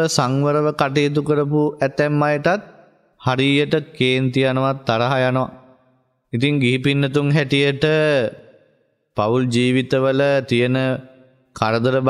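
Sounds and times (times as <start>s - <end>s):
person chanting: 0.0s - 5.7s.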